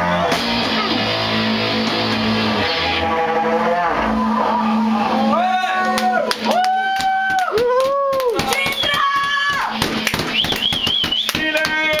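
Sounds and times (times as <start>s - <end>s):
distorted metal band playing: 0.0s - 6.3s, 8.6s - 12.0s
person shouting: 7.7s - 9.8s.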